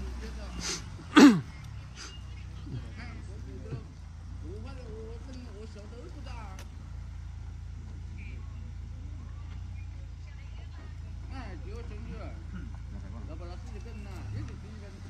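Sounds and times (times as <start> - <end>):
vehicle engine low rumble: 0.0 - 15.0.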